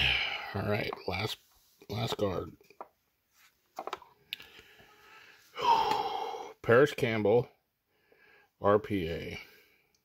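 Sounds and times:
soft rustle of cards: 1.0 - 5.0.

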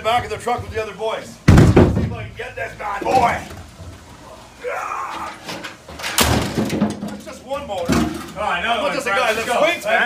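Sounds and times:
smaller metal knocks: 0.0 - 2.3
engine crashing onto metal: 1.4 - 2.4, 5.3 - 8.5.

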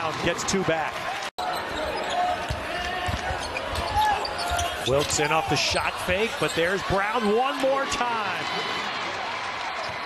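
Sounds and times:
crowd noise: 0.0 - 10.0
sneaker squeaks: 1.5 - 5.2.

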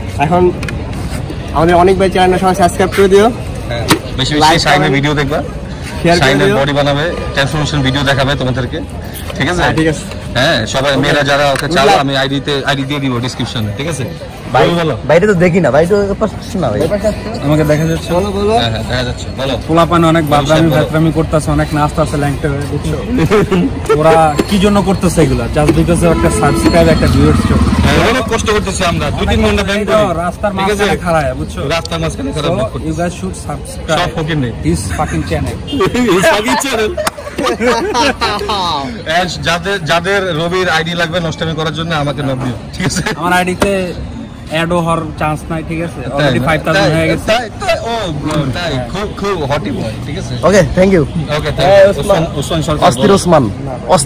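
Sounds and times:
people talking: 0.0 - 54.0
street traffic hum: 0.0 - 54.0
man speaking: 1.5 - 54.0.

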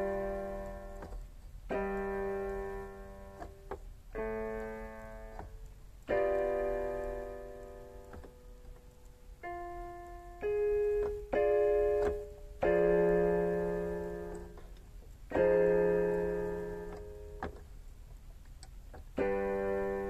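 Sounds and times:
slow piano chords: 0.0 - 20.0.

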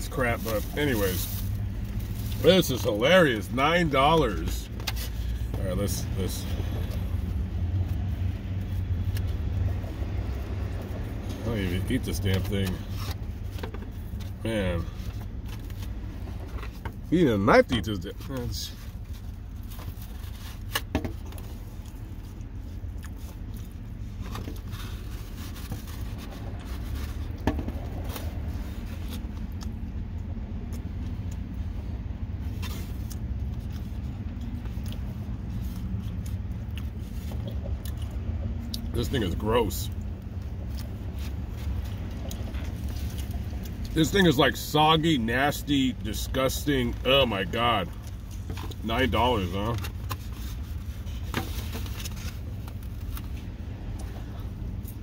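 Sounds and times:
low rumble in car cabin: 0.0 - 55.0.

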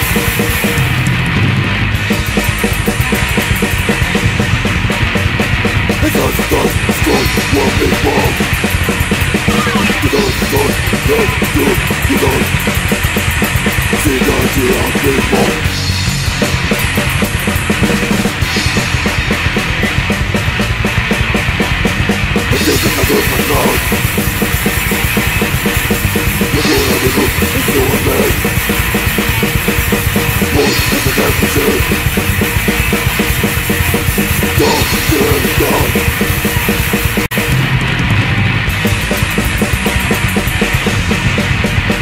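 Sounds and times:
punk band playing: 0.0 - 42.0.

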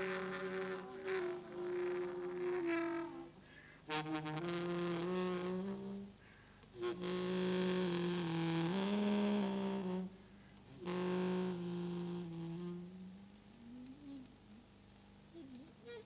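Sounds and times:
alto saxophone low notes: 0.0 - 14.7.

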